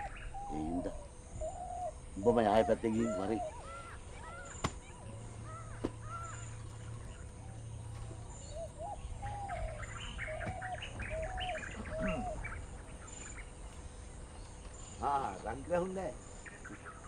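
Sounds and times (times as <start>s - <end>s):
birds chirping: 0.0s - 17.0s
faint low hum: 0.0s - 17.0s.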